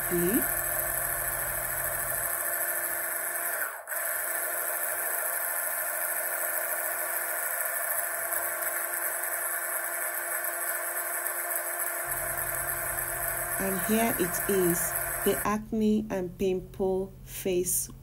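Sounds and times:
electric hand mixer whisking: 0.0 - 15.5.

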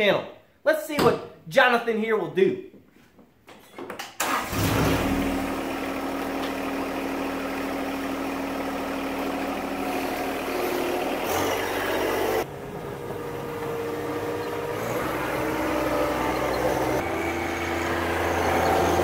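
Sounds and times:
tractor diesel engine idling: 5.0 - 19.0.

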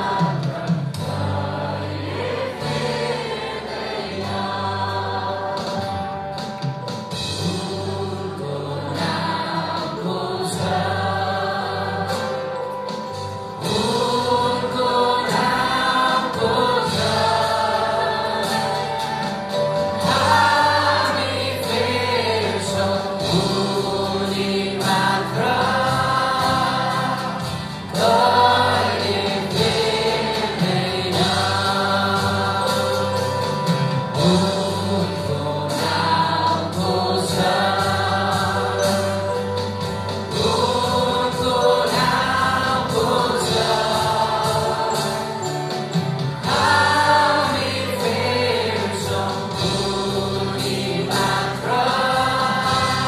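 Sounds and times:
acoustic guitar: 0.0 - 53.0
drums: 0.0 - 53.0
people singing into microphones: 0.0 - 53.0.

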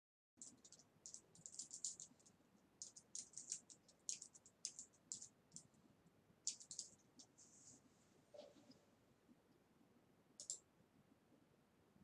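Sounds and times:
typing on keyboard: 0.4 - 5.7, 6.4 - 7.3, 10.4 - 10.6.

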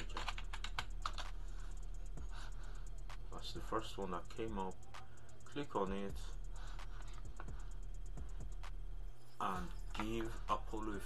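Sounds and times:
computer keyboard keystrokes: 0.0 - 1.4
low electrical hum: 0.0 - 11.0.

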